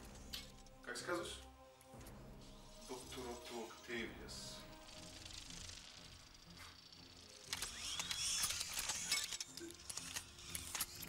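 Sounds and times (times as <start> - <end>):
whirring whine: 4.4 - 11.0
mechanical clicks and clanks: 6.8 - 11.0.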